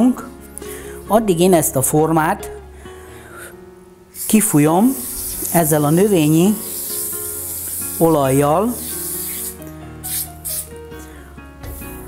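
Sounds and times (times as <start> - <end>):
background music: 0.0 - 12.0
aerosol spray hisses: 4.2 - 10.8, 11.6 - 12.0.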